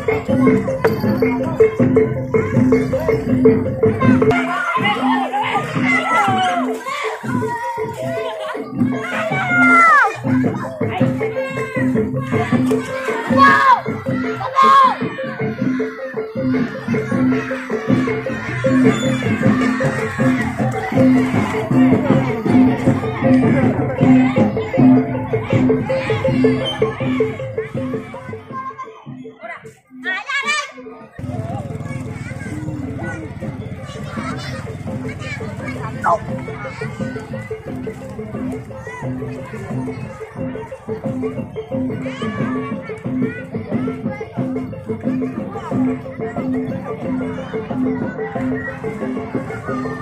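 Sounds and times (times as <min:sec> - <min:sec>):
children chattering and calling out: 0:00.0 - 0:50.0
low drum and gong beats: 0:08.8 - 0:28.6.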